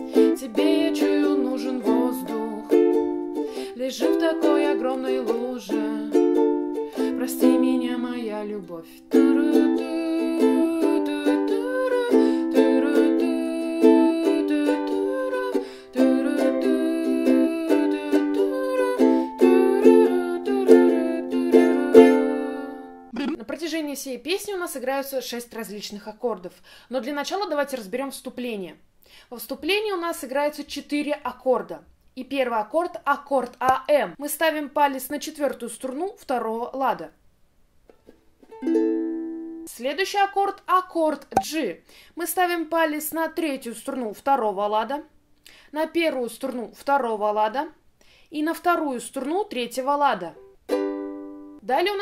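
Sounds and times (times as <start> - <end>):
ukulele strumming chords: 0.0 - 23.1, 38.0 - 39.7, 50.4 - 51.6.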